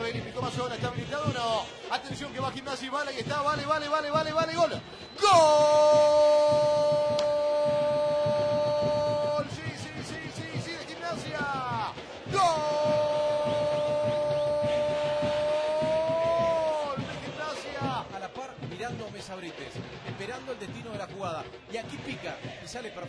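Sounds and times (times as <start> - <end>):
stadium crowd noise: 0.0 - 23.0
commentator shouting goal cry: 3.2 - 18.4.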